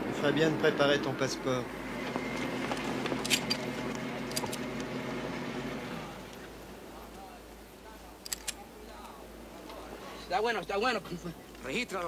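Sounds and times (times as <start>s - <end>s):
vehicle engine humming: 0.0s - 9.7s
sharp clicks: 8.2s - 8.6s.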